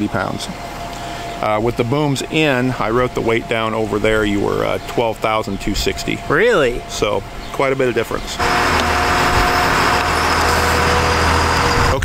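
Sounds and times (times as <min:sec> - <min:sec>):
diesel engine running: 0:00.0 - 0:12.0
thin steady whine: 0:00.0 - 0:12.0.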